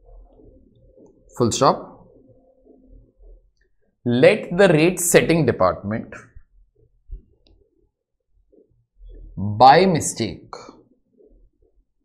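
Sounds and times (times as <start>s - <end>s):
person speaking: 0.0s - 3.4s, 4.0s - 6.6s, 9.0s - 11.3s.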